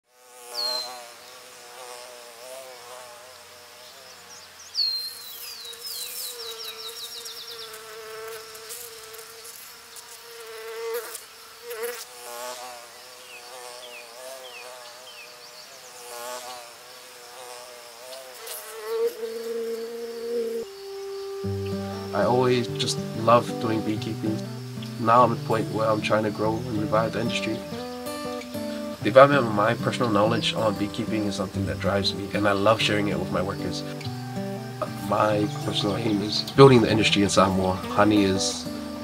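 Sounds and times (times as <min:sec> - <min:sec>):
bees buzzing: 0:00.1 - 0:39.0
bird chirping: 0:00.6 - 0:01.4, 0:03.8 - 0:08.3, 0:19.2 - 0:39.0.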